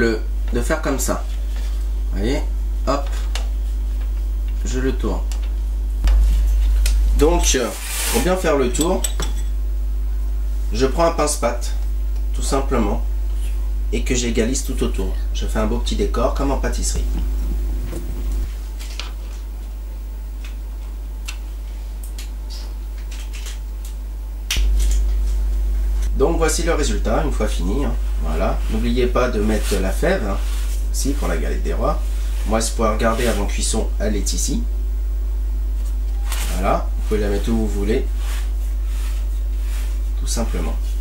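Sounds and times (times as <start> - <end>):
low electrical hum: 0.0 - 41.0.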